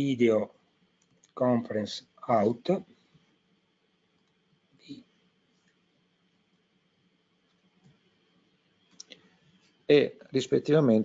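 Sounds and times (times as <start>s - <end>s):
man speaking: 0.0s - 0.5s, 1.4s - 2.9s, 9.9s - 11.0s.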